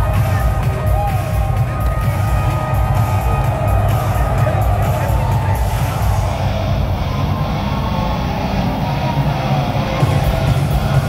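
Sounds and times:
entrance music over arena loudspeakers: 0:00.0 - 0:11.0.

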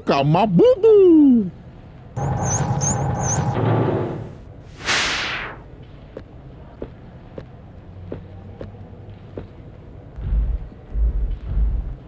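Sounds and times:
high twinkles: 0:02.2 - 0:03.6
short whoosh: 0:02.9 - 0:05.7.

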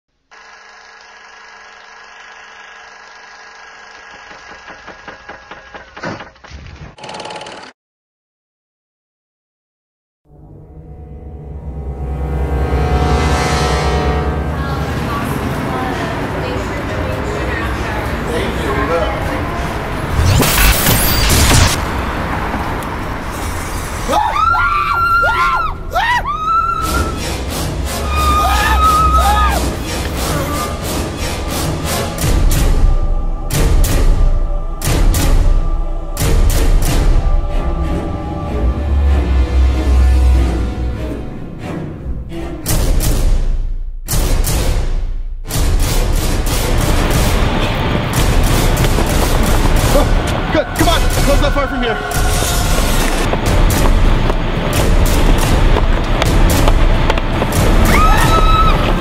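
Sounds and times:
film projector whirr and rattle: 0:00.3 - 0:06.0, 0:07.0 - 0:07.7
loud swoosh: 0:10.6 - 0:16.1, 0:19.7 - 0:24.1
harsh burst: 0:20.1 - 0:22.5
loud crashing hit: 0:20.1 - 0:22.6.

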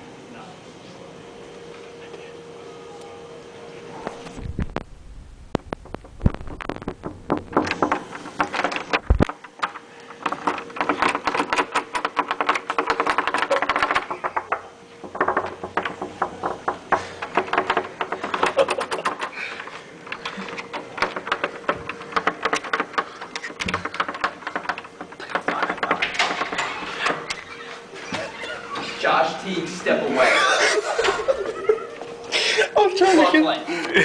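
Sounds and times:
doorknob and latch rattling: 0:20.1 - 0:27.4.

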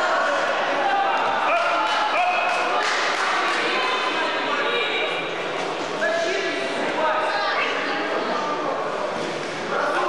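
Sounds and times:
people shouting in echoing hall: 0:00.0 - 0:05.4.

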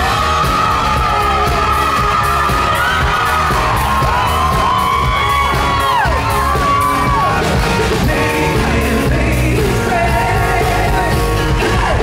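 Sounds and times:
drums: 0:00.0 - 0:12.0
keyboard: 0:00.0 - 0:12.0
pop-rock band playing: 0:00.0 - 0:12.0.

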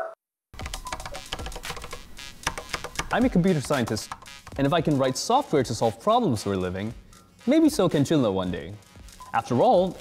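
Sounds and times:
keyboard typing: 0:00.6 - 0:04.8.

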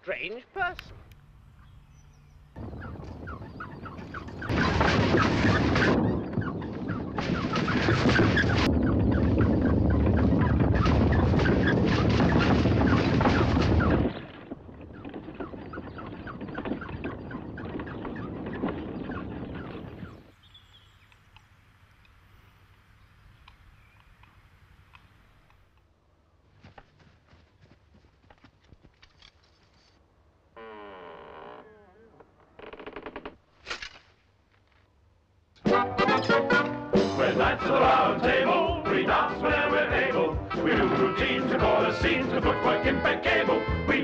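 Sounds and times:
birds calling: 0:00.6 - 0:26.0
wooden door creaking on hinges: 0:30.6 - 0:33.5.

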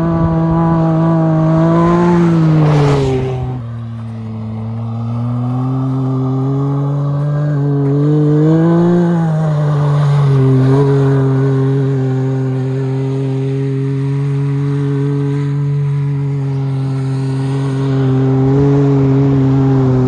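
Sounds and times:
engine at high revs: 0:00.0 - 0:20.0.

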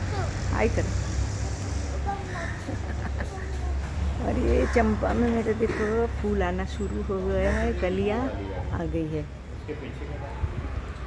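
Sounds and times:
child calling: 0:00.0 - 0:00.5, 0:02.0 - 0:04.8.

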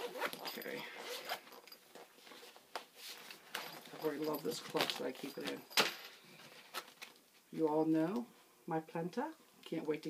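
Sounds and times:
zipper being pulled: 0:00.0 - 0:01.8
faint handling noise: 0:00.0 - 0:08.3.

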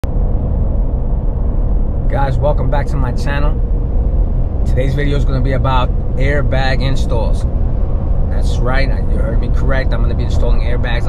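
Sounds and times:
road noise inside vehicle cab: 0:00.0 - 0:11.0.

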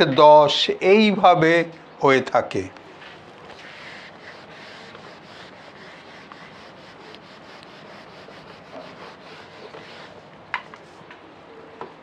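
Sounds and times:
duster rubbing whiteboard: 0:03.1 - 0:10.9.

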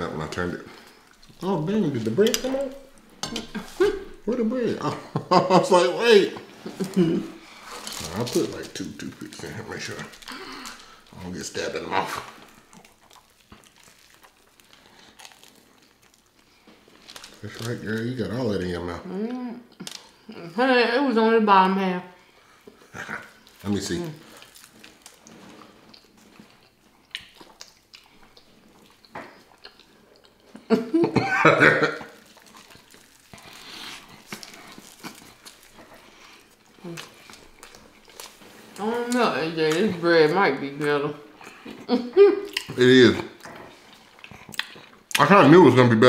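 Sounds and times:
sandwich crunching being chewed: 0:00.1 - 0:04.3, 0:06.5 - 0:18.7, 0:22.5 - 0:40.0, 0:40.8 - 0:45.3.

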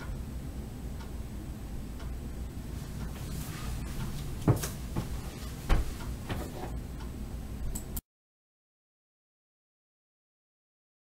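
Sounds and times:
low room hum: 0:00.0 - 0:08.0
footsteps: 0:02.8 - 0:06.8
handling knocks: 0:04.4 - 0:06.8.

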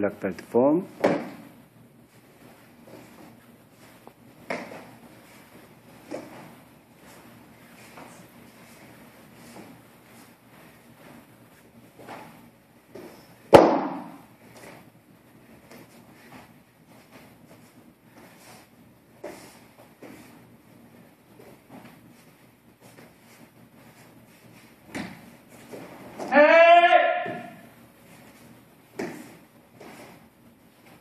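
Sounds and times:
staff sharp impact crack: 0:13.5 - 0:14.2
man shouting: 0:26.3 - 0:27.6.

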